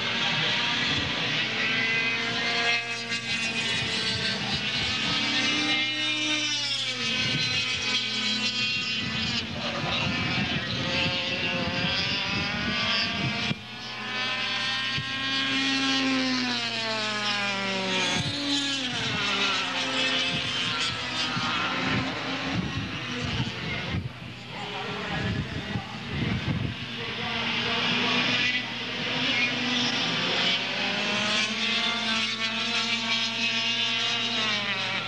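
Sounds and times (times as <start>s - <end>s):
kart engines racing past: 0.0s - 35.0s.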